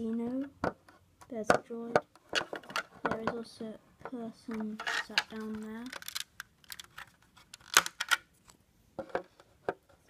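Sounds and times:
plastic lego pieces clicking: 4.8s - 8.2s.

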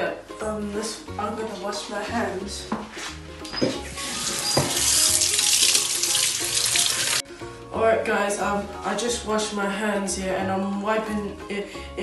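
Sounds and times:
tap water running into sink: 3.6s - 7.2s
hands washing under water: 3.8s - 7.2s.

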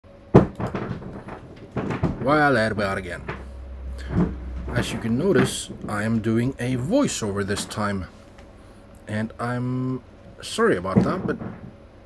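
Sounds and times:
clicks and knocks on hard surface: 0.4s - 10.0s, 10.7s - 11.8s.

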